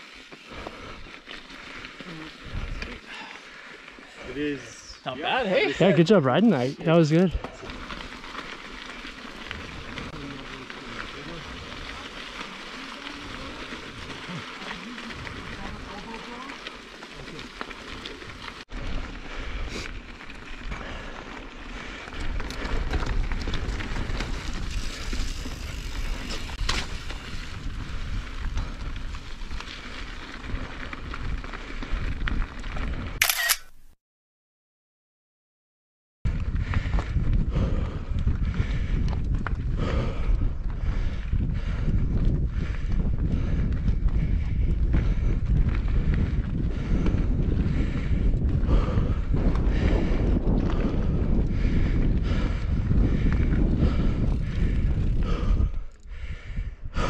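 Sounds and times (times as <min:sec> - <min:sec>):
bike tyres on rocky gravel trail: 0:00.0 - 0:33.2, 0:36.3 - 0:57.0.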